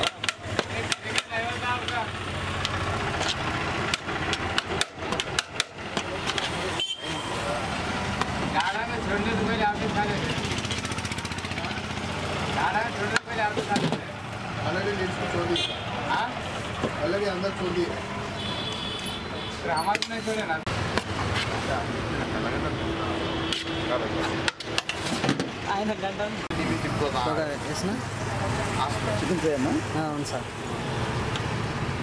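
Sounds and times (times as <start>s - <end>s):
sharp knocks and clicks: 0.0s - 2.0s, 2.6s - 6.5s, 24.4s - 25.6s
street traffic hum: 0.0s - 32.0s.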